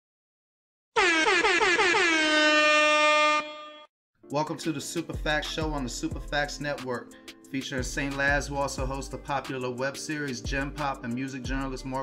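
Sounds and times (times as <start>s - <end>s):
air horn blasts: 1.0s - 3.9s.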